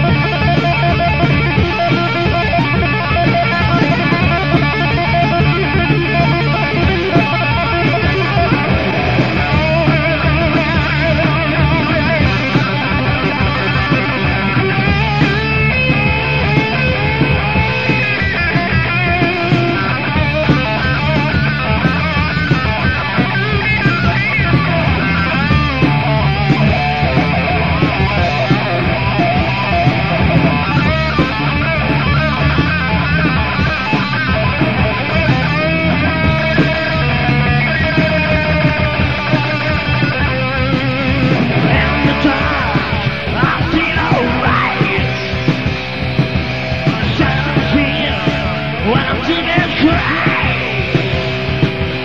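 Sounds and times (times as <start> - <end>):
heavy metal band playing: 0.0 - 52.0
lead guitar bending pitch: 0.0 - 52.0.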